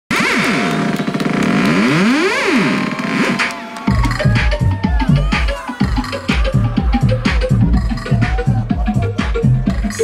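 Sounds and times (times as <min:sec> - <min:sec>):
synth sweeping in pitch: 0:00.1 - 0:05.2
house music: 0:00.1 - 0:10.0.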